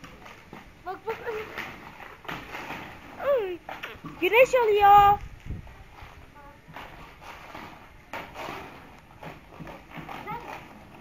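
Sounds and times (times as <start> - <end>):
skate wheels rolling on concrete: 0.0 - 11.0.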